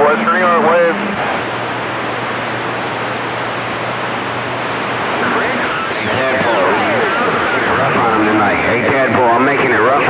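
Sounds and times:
low hum: 0.0 - 9.8
faint distorted radio voices: 0.0 - 10.0
radio static hiss: 0.0 - 10.0.

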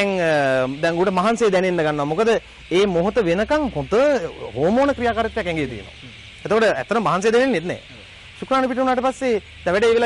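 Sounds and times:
faint steady hiss: 0.0 - 10.0
man narrating: 0.0 - 10.0.

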